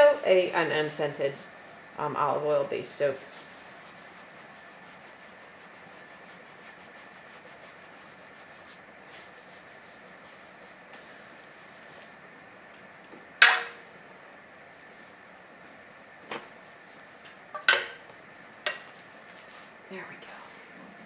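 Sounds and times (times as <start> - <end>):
hands rubbing under bubble wrap: 2.9 - 12.2, 16.2 - 17.5, 18.4 - 19.8.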